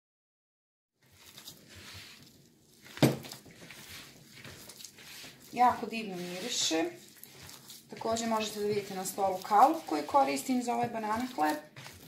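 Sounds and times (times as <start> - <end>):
hands kneading soft dough: 1.0 - 12.0.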